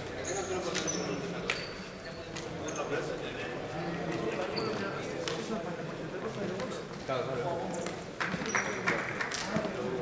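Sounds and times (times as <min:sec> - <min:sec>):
people talking in a hall: 0:00.0 - 0:10.0.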